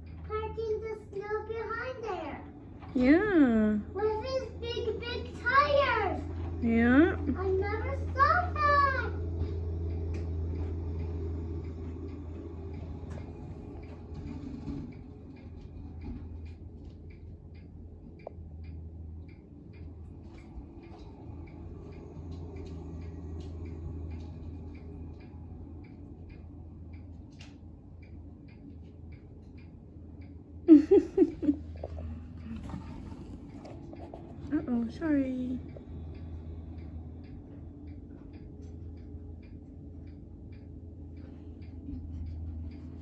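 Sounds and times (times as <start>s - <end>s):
faint regular ticking: 0.0s - 43.0s
tractor engine droning: 0.0s - 43.0s
child's voice: 0.2s - 9.3s.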